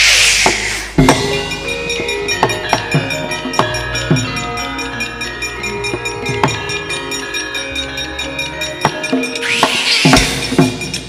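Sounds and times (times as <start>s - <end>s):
sharp struck strokes: 0.0s - 1.6s, 9.4s - 11.0s
gamelan ensemble playing: 0.9s - 11.0s.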